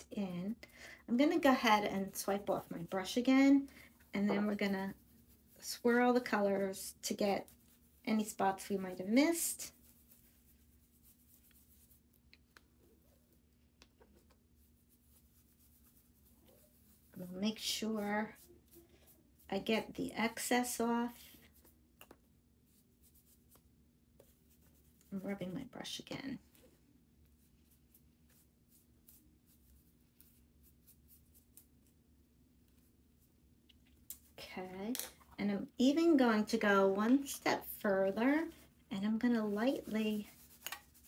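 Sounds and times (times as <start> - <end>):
brush swirling over cardstock: 0.6 - 21.9, 22.6 - 34.4, 35.8 - 41.0.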